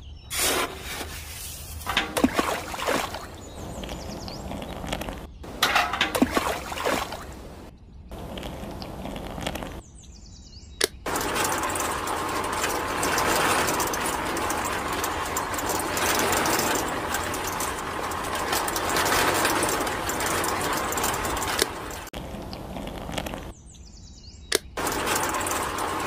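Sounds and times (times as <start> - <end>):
water sloshing in turning drum: 0.4 - 7.7, 11.1 - 22.2, 24.8 - 26.0.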